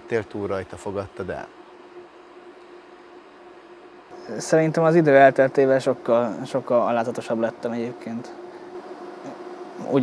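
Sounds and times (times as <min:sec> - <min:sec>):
even hiss: 0:00.0 - 0:10.0
faint constant hum: 0:00.0 - 0:10.0.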